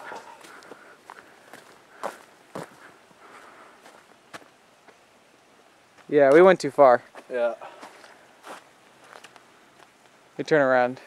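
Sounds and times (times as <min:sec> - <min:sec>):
footsteps on dirt trail: 0:00.0 - 0:05.0, 0:05.9 - 0:10.2.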